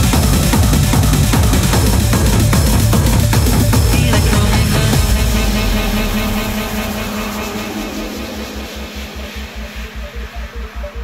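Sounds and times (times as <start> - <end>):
fast pulsing bass and kick beat: 0.0 - 11.0
rushing noise sweep: 5.0 - 11.0.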